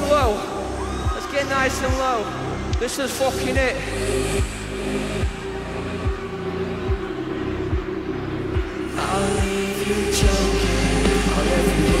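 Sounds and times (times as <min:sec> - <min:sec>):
full band with rising sweep: 0:00.0 - 0:12.0.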